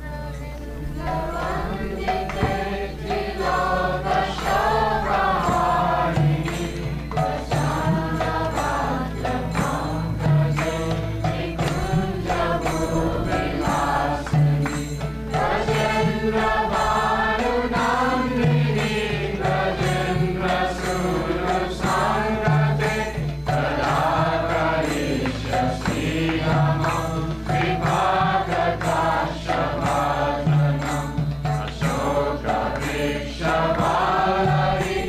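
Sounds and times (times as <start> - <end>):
devotional chanting: 0.0 - 35.0
low sustained accompaniment: 0.0 - 35.0
percussive beat: 1.0 - 35.0.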